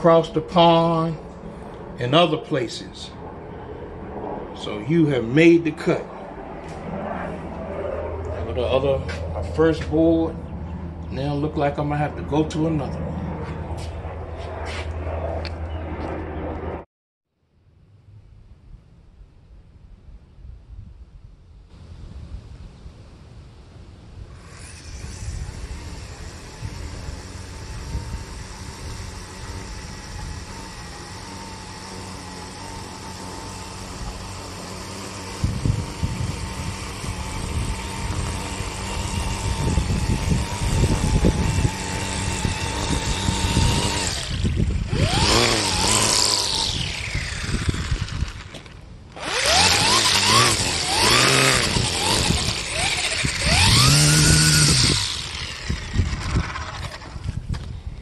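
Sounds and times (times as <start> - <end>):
string trimmer whining: 0.0 - 16.2, 24.3 - 58.0.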